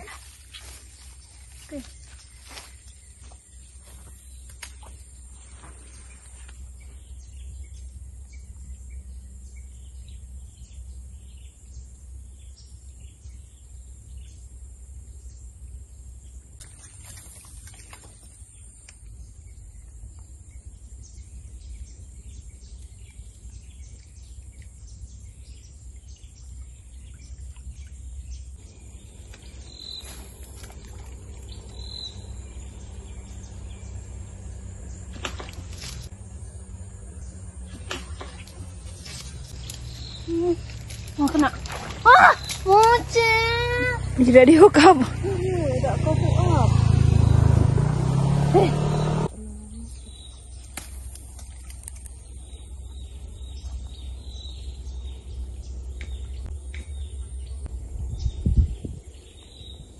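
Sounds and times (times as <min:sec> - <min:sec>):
insects buzzing: 0:00.0 - 0:59.8
low rumble: 0:18.5 - 0:59.9
high bird calls: 0:27.0 - 0:36.1, 0:37.1 - 0:44.9.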